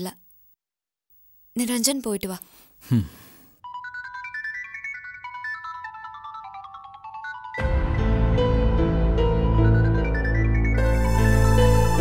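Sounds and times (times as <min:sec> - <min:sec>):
mobile phone ringtone: 0:03.6 - 0:07.7.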